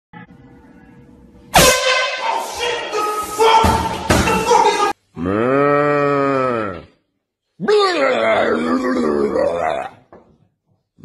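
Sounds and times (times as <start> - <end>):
canned air horn blast: 1.5 - 5.0.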